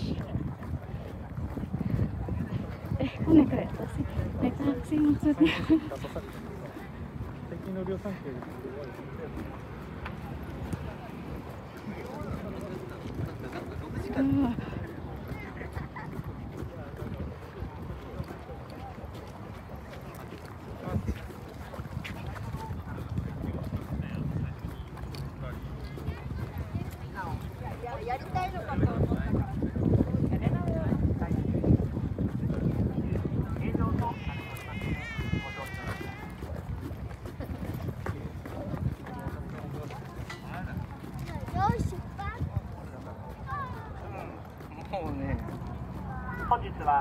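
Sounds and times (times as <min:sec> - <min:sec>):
indistinct voices of passers-by: 0:00.0 - 0:47.0
talking in background: 0:00.0 - 0:47.0
wind buffeting microphone: 0:00.0 - 0:47.0.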